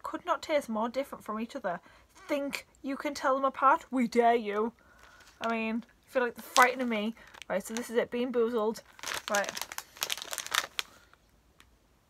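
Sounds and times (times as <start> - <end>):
plastic bag crinkling: 4.5 - 11.3.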